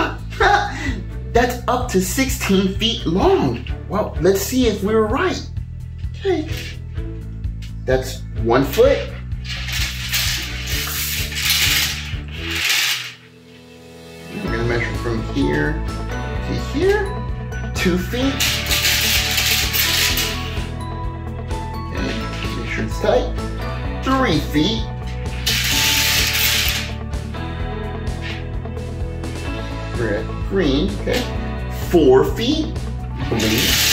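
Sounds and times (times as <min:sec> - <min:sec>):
loud rustling and scraping: 0:09.0 - 0:13.3, 0:18.3 - 0:20.7, 0:25.3 - 0:26.9, 0:33.3 - 0:33.9
plastic beads rattling on wood: 0:09.4 - 0:13.2, 0:18.3 - 0:20.7, 0:25.3 - 0:26.9, 0:33.3 - 0:33.9.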